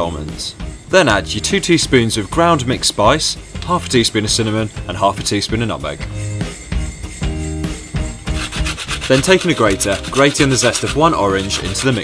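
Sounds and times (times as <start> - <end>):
background music: 0.0 - 12.0
orange rubbed on hand grater: 8.3 - 12.0.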